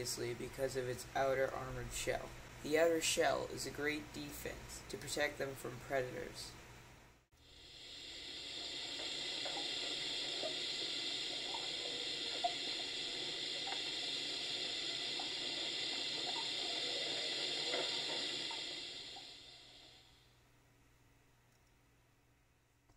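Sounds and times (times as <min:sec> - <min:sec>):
rushing hissing noise: 0:07.4 - 0:20.2.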